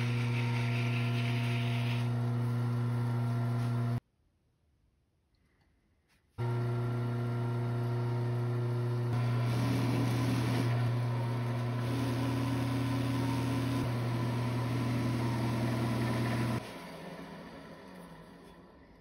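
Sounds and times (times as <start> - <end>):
lathe motor hum: 0.0 - 4.0, 6.4 - 19.0.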